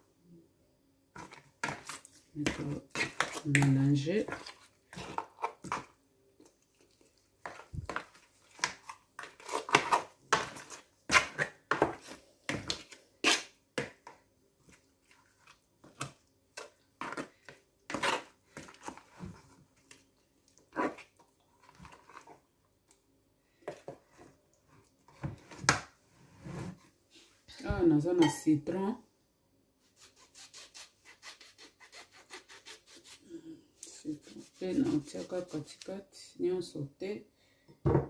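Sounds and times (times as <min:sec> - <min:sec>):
spoon stirring wet paste in bowl: 0:01.2 - 0:23.0, 0:33.8 - 0:36.1.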